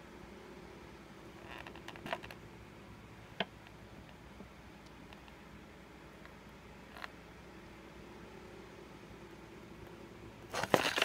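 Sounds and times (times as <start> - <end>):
plastic container rustling: 10.5 - 11.0.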